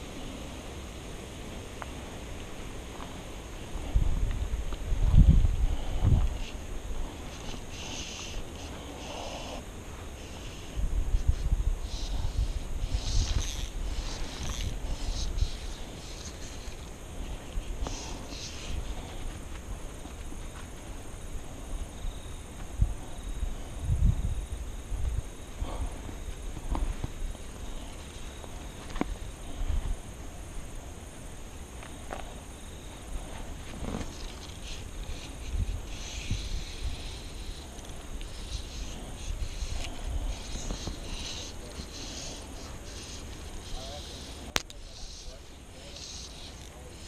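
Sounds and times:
wind rumbling on microphone: 0:00.0 - 0:31.5, 0:32.2 - 0:45.2.

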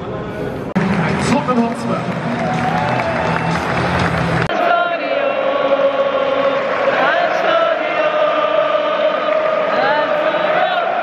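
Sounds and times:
stadium crowd chanting: 0:04.4 - 0:11.0.

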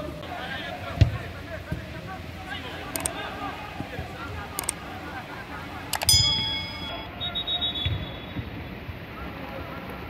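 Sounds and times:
faint voices: 0:00.0 - 0:07.6
outdoor noise: 0:00.0 - 0:10.0
sharp click: 0:06.0 - 0:07.0.

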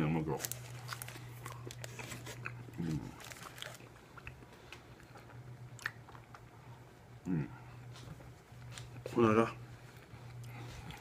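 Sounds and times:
person grunting hum: 0:02.7 - 0:03.2.

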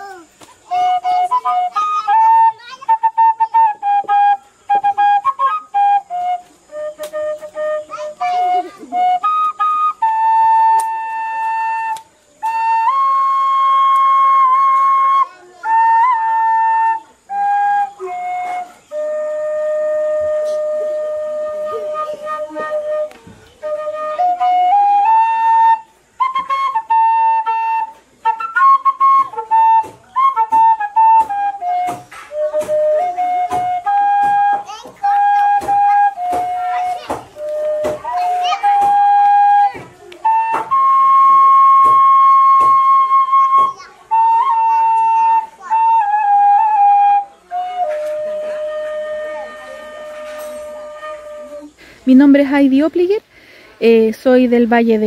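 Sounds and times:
flute playing held notes: 0:00.0 - 0:52.6.

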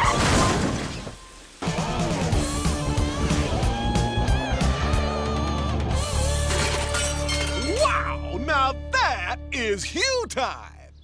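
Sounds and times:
cartoon crash shattering: 0:00.0 - 0:01.1.

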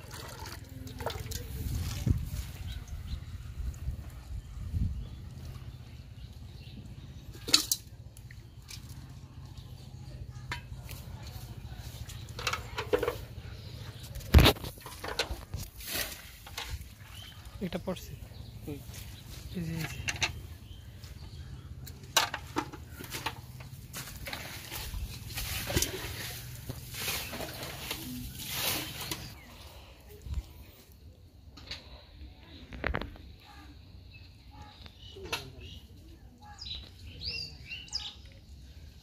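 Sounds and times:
hands rustling in wet grass: 0:13.9 - 0:17.8, 0:23.0 - 0:31.0.

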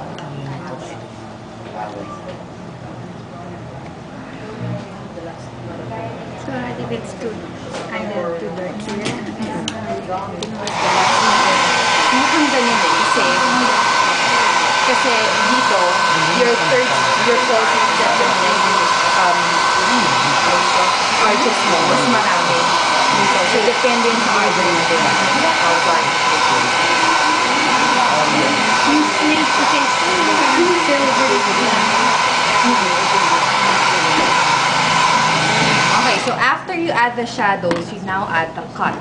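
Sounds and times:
hair dryer running: 0:10.4 - 0:36.6.

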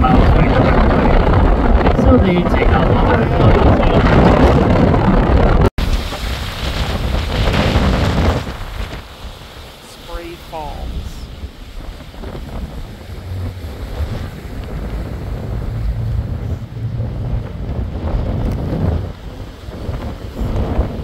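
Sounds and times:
wind buffeting microphone: 0:00.0 - 0:09.8, 0:10.5 - 0:21.0
water rushing along hull: 0:00.0 - 0:21.0.

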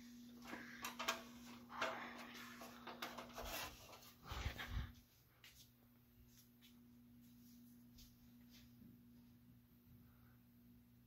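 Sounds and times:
ceiling fan humming: 0:00.0 - 0:11.0.

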